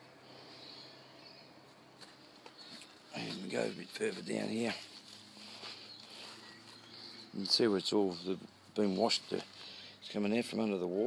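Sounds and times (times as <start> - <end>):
footsteps on wet grass: 1.7 - 9.9.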